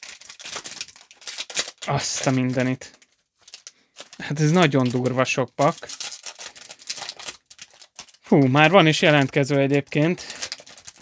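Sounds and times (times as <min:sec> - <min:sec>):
plastic wrappers crinkling: 0:00.0 - 0:11.0.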